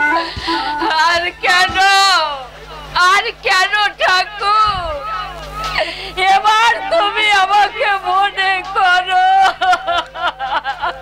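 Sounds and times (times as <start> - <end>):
woman singing wailing lament: 0.0 - 2.4, 5.8 - 10.9.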